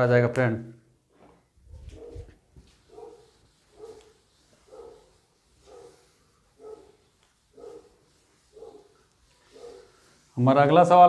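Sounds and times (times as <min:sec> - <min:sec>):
dog barking faintly: 0:01.8 - 0:10.2.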